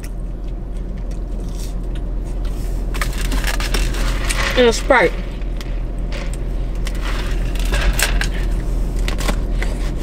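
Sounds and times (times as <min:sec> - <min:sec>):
chewing crunchy fries: 0:00.0 - 0:10.0
low hum: 0:00.0 - 0:10.0.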